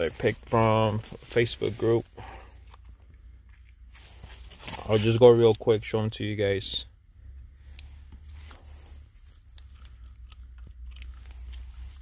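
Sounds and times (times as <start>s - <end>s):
low rumble in car cabin: 0.0s - 12.0s.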